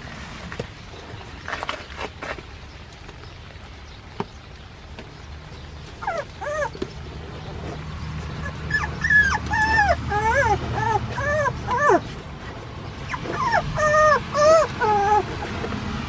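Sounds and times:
puppies whimpering and yelping: 5.8s - 15.8s.

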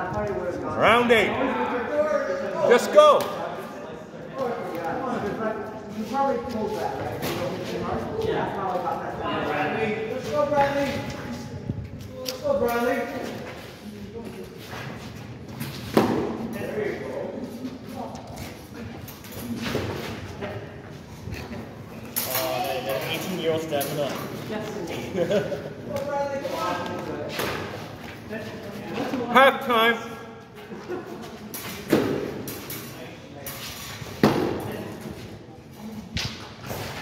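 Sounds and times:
indistinct voices and laughter: 16.5s - 27.4s, 28.0s - 33.5s.

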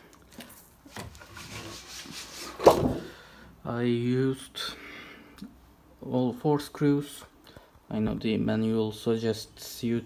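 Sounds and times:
sheet rubbing under hand: 0.9s - 2.8s.

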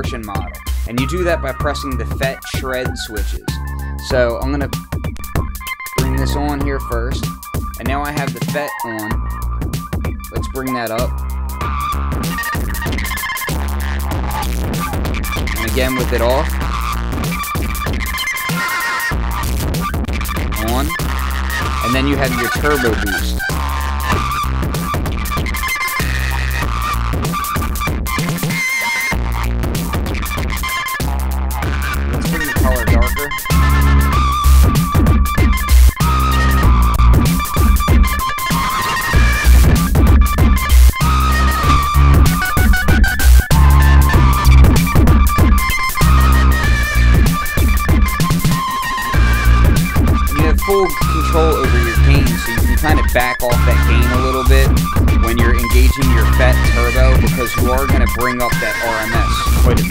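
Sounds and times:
sliding pitched electronic tones: 5.8s - 7.3s, 32.1s - 34.9s, 38.0s - 59.9s
steady synth tones: 5.9s - 7.0s, 40.6s - 44.9s
deep booming kick drums: 24.0s - 25.2s, 39.2s - 46.2s, 54.1s - 55.7s.

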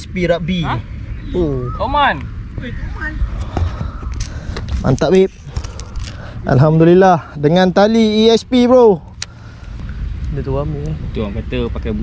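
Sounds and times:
wind rumble on microphone: 0.0s - 6.8s
man speaking: 6.4s - 9.0s.

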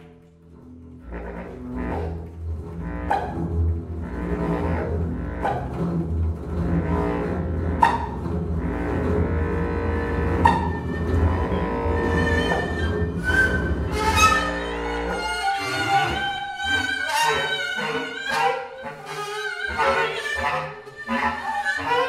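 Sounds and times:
double bass low sustained notes: 0.0s - 16.8s
flute holding tones: 9.6s - 17.6s.

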